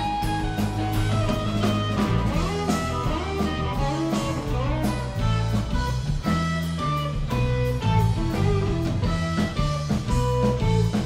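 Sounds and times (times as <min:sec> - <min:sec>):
electric guitar lead lines: 0:00.0 - 0:11.0
rock band playing: 0:00.0 - 0:11.0.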